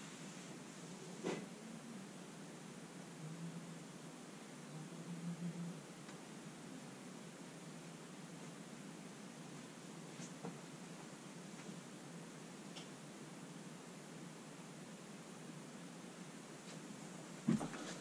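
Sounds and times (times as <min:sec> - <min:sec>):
faint hiss: 0:00.0 - 0:18.0.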